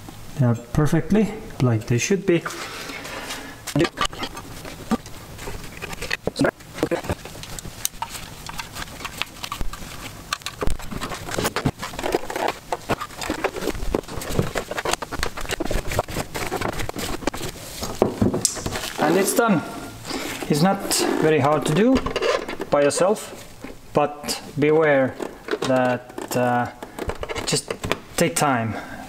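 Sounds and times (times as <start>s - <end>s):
plastic parts clicking and rattling: 3.7s - 19.4s, 20.3s - 23.8s, 25.0s - 28.4s.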